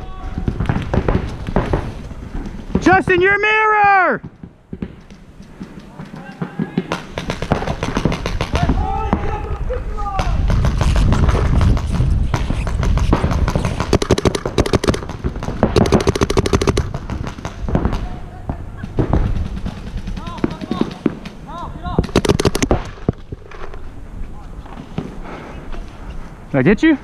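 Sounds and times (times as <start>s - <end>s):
paintball markers firing: 4.2s - 9.3s, 10.2s - 18.1s, 18.8s - 23.8s.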